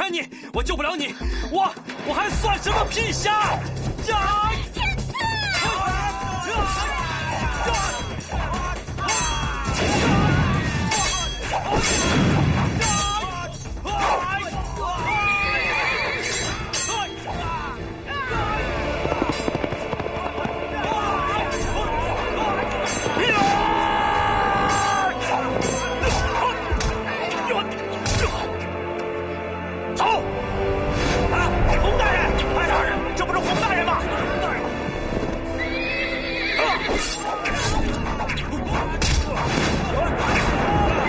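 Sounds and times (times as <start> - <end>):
horse neighing: 15.2 - 16.6, 35.6 - 37.3.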